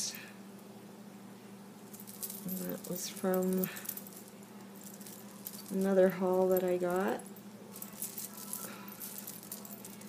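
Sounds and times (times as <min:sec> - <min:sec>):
beads and metal charms clinking: 0:01.8 - 0:10.0.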